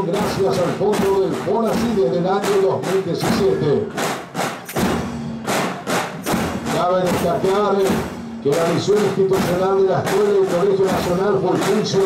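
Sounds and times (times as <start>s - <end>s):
marching drums hits: 0.0s - 12.0s.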